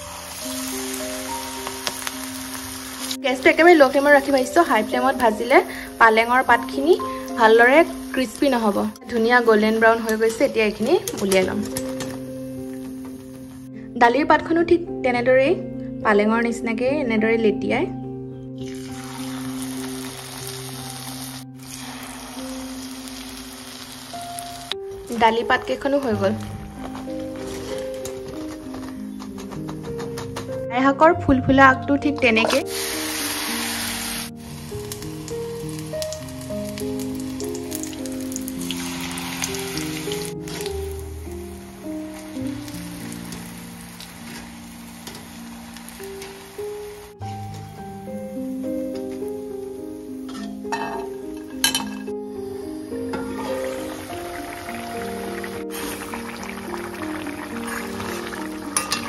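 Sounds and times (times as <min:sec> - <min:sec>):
leaves frying in hot oil: 0:00.0 - 0:13.2, 0:18.6 - 0:29.1, 0:32.5 - 0:48.7, 0:53.1 - 0:59.0
soft background music: 0:00.0 - 0:59.0.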